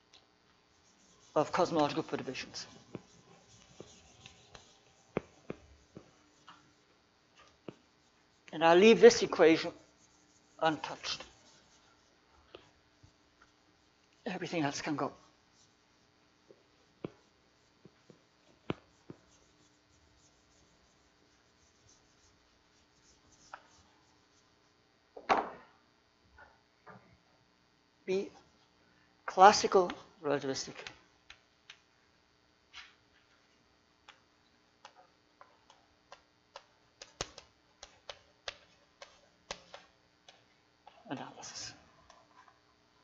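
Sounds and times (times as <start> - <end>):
eraser wiping chalkboard: 0.7 - 6.8, 7.4 - 12.2, 15.3 - 24.7, 36.6 - 40.0.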